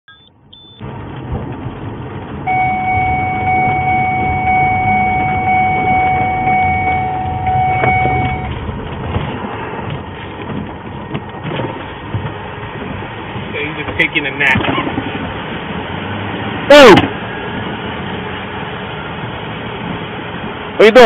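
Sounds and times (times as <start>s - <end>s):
short high beeps: 0.1s - 0.8s, 2.5s - 8.5s
car engine and road noise: 0.1s - 21.0s
steady electronic tone: 2.5s - 8.5s.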